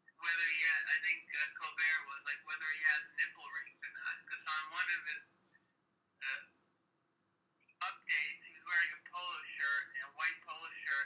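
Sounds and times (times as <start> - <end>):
person talking over phone: 0.2 - 5.3, 6.2 - 6.6, 7.8 - 11.0.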